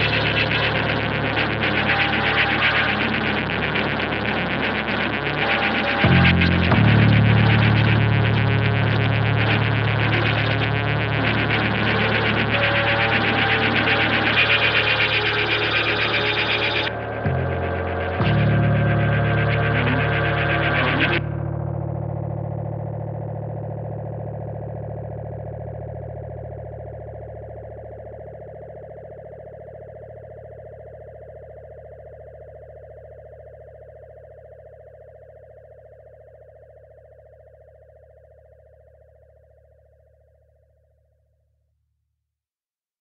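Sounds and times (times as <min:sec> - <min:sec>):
held chord with deep bass: 0:00.0 - 0:28.8.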